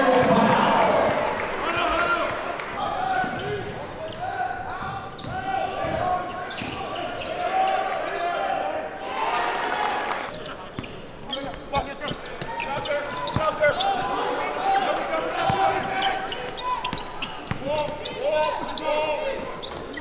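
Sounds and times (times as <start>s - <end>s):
crowd voices: 0.0s - 20.0s.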